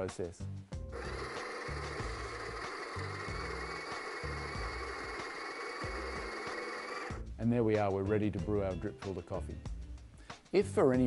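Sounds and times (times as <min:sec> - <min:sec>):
coffee grinder whirring: 0:00.9 - 0:07.2.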